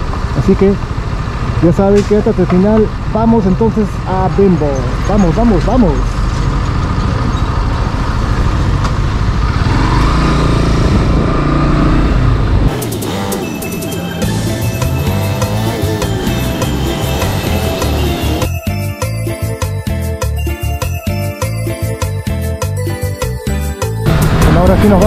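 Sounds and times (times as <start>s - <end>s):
motorcycle engine rumble: 0.0s - 18.5s, 24.0s - 25.0s
music with steady beat: 12.7s - 25.0s.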